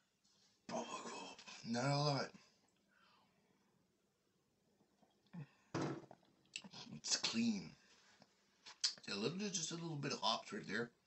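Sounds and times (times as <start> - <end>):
lip smacks: 8.7 - 9.1.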